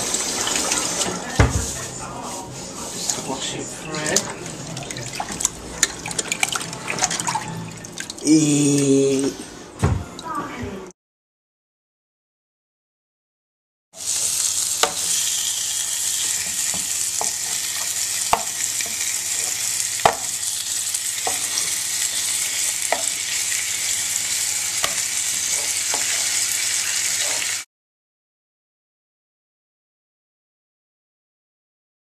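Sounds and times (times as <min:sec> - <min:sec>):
meat sizzling in a pot: 0:14.0 - 0:27.7
utensil knocking against pan: 0:20.0 - 0:20.3.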